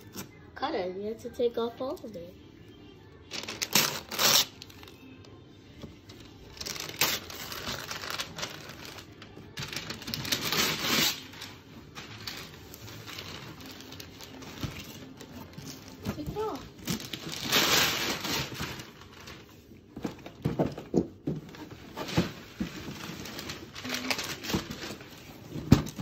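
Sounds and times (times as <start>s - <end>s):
faint background music: 0.0s - 26.0s
wrapping paper tearing and crinkling: 3.3s - 5.1s, 6.2s - 19.7s, 21.5s - 26.0s.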